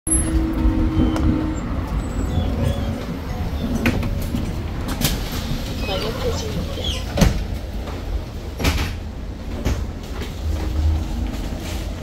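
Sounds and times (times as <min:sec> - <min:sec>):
bus low steady rumble: 0:00.1 - 0:12.0.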